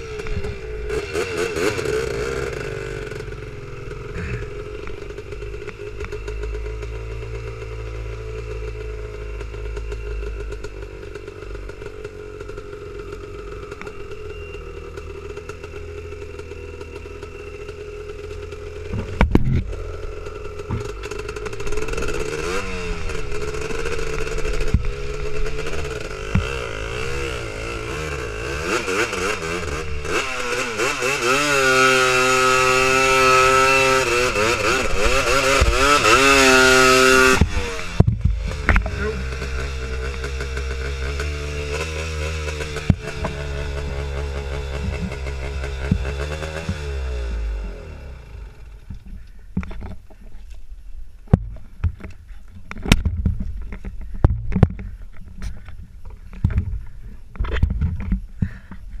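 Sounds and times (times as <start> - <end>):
two-stroke quad engine revving: 0.0 - 50.0.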